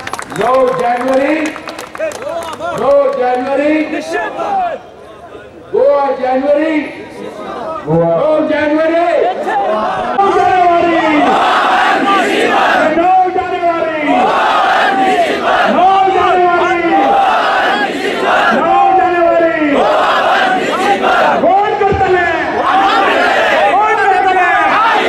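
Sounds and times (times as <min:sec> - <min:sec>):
crowd chanting slogans: 0:09.3 - 0:13.0, 0:14.0 - 0:25.0.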